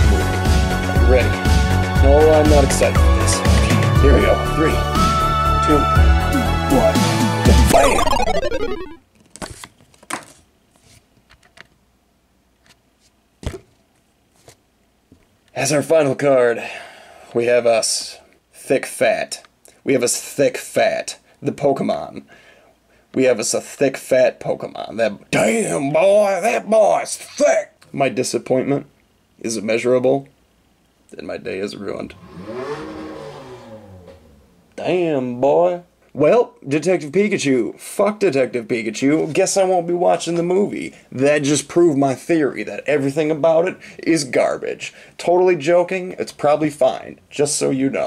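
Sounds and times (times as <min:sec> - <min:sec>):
trading card rustling: 0:09.2 - 0:11.6.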